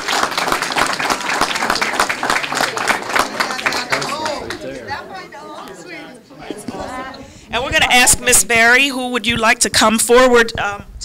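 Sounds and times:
people chattering: 0.0s - 10.2s.

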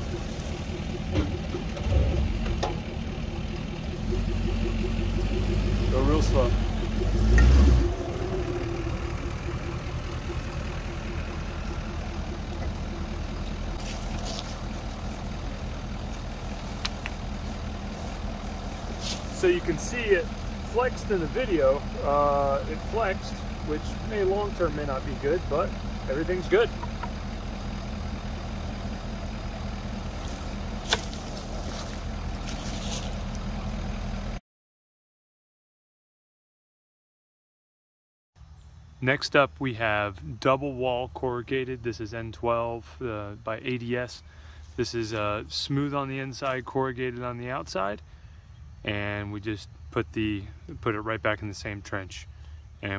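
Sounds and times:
truck engine running: 0.0s - 34.4s.

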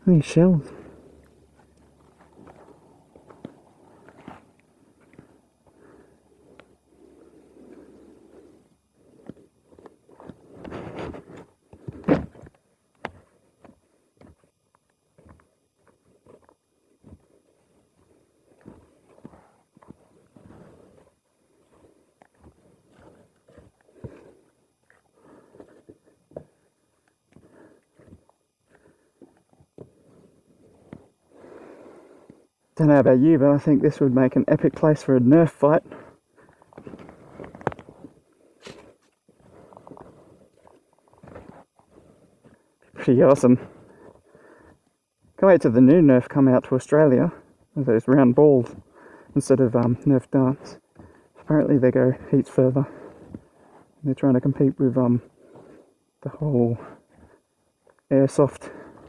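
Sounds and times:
scuffing: 16.2s - 24.4s.

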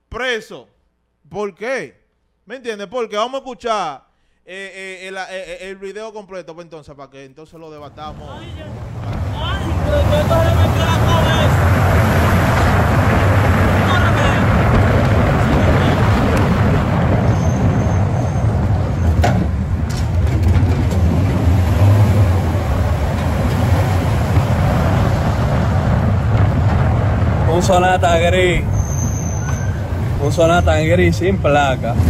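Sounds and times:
car engine and road noise: 7.8s - 32.0s.

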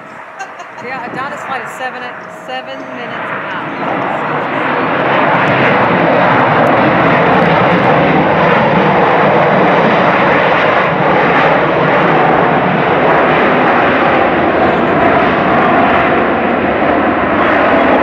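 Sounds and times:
jet engines roaring: 0.0s - 18.0s.

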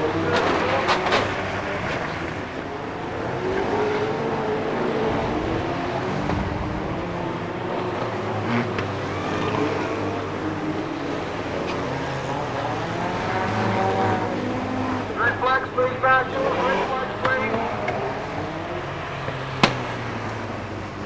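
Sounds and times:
race car engines passing: 0.0s - 21.0s
person speaking: 15.1s - 18.0s.

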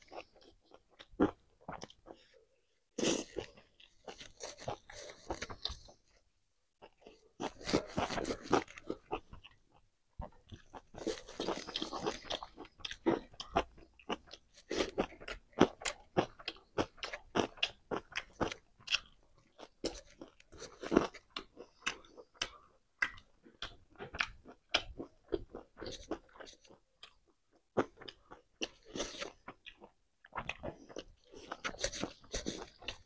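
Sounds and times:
chewing and crunching food: 0.0s - 33.0s.

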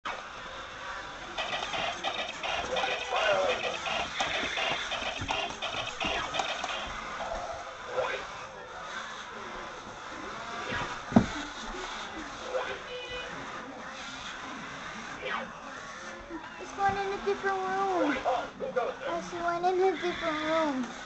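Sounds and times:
robot toy playing tinny music: 1.4s - 6.9s
toy voice clips: 1.4s - 6.9s, 19.4s - 21.0s.

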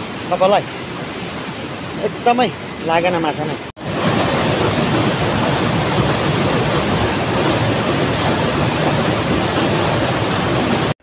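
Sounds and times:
waterfall rushing water: 0.0s - 11.0s.

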